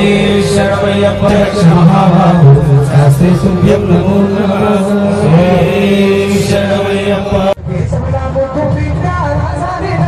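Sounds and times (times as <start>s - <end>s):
men chanting in held tones: 0.0s - 7.6s.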